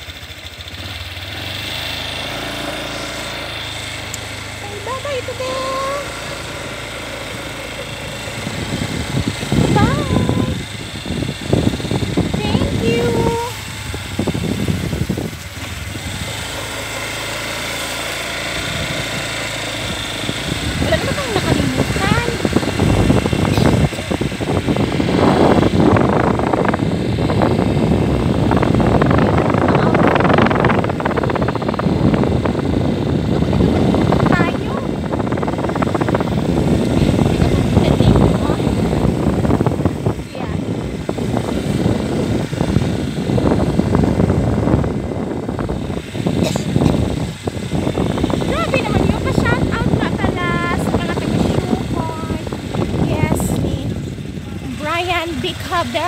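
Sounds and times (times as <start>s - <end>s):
moving vehicle running noise: 0.0s - 56.0s
wind buffeting microphone: 0.0s - 56.0s.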